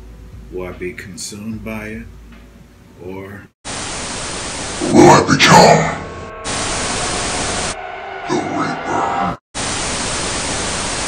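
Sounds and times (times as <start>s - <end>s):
tv static hiss: 3.0s - 7.8s, 9.6s - 11.0s.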